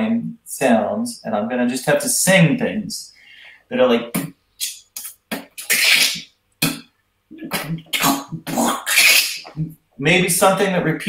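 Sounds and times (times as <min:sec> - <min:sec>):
man making hissy vocal bursts: 0:04.1 - 0:09.8.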